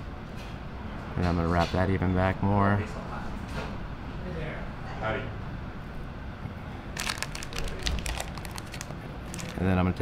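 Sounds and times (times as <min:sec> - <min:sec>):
synthetic strands crinkling: 0:07.0 - 0:09.8.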